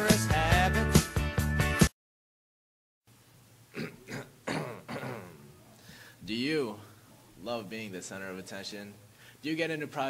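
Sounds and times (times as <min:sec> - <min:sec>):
man coughing: 0:03.7 - 0:05.6.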